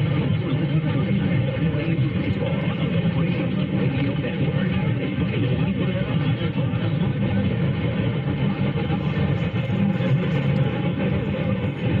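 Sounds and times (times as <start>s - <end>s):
faint radio station audio: 0.0s - 12.0s
radio static: 8.4s - 12.0s.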